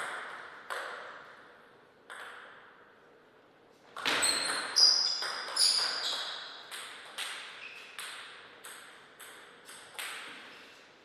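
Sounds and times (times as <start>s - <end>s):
table tennis ball bouncing: 0.0s - 2.8s, 3.9s - 10.5s.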